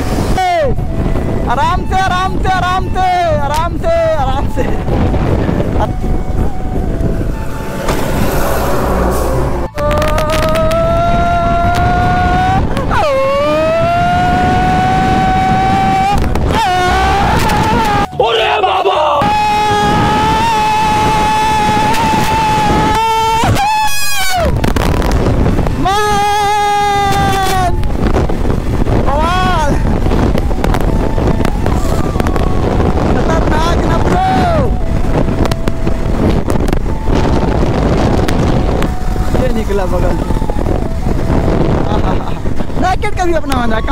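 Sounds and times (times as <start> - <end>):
wind on microphone: 0.0 - 18.2, 19.2 - 43.9
motorcycle engine accelerating: 6.8 - 10.8.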